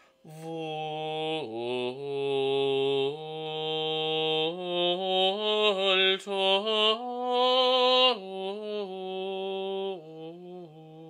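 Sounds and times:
man singing chant unaccompanied: 0.2 - 11.0.

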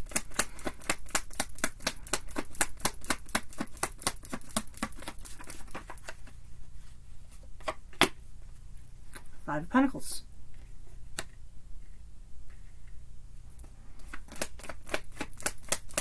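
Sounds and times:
cards being shuffled: 0.0 - 6.4, 14.0 - 16.0.

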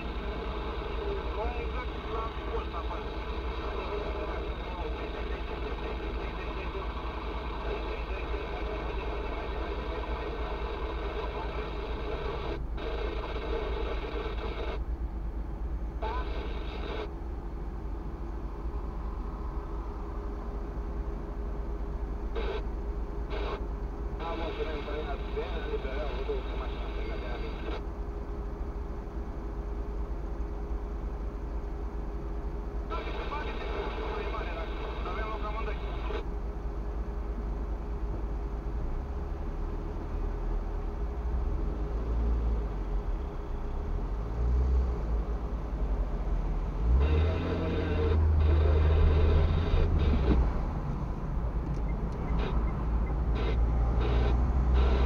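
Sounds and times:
indistinct radio talk: 0.0 - 14.8, 15.9 - 17.1, 22.3 - 27.9, 32.8 - 36.3, 46.9 - 50.6, 51.7 - 55.0
steady low rumble: 0.0 - 41.4.

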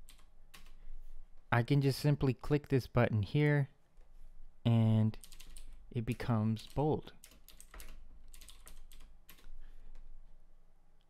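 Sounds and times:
computer keyboard typing: 0.0 - 0.8, 5.2 - 10.0.

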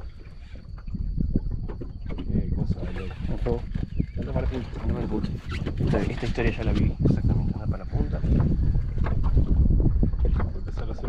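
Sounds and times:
wind buffeting microphone: 0.0 - 11.0
voices: 2.2 - 8.4.

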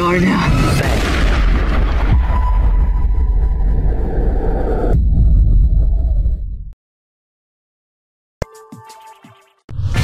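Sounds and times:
deep rumble: 1.0 - 6.8.

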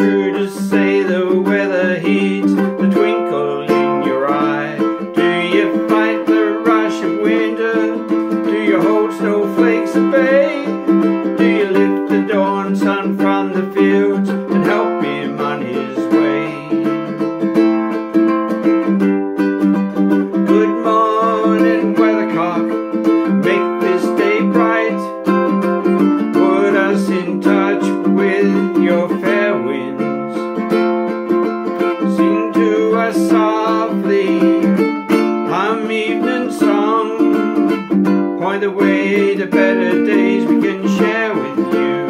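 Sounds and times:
ukulele strumming: 0.0 - 42.0.

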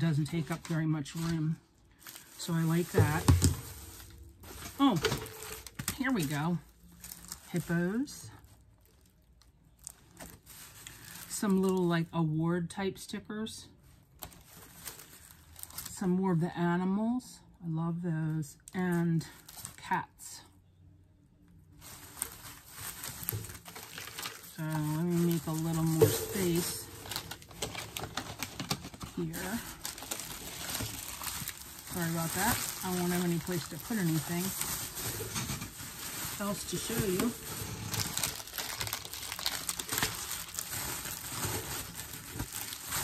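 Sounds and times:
plastic packaging crinkling: 0.0 - 11.9, 13.9 - 16.0, 19.3 - 19.8, 21.7 - 43.0.

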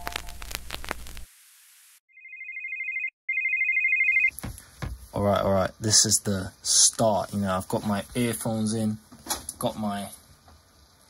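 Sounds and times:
electronic telephone ringing: 2.2 - 4.3
man talking: 5.1 - 10.2.

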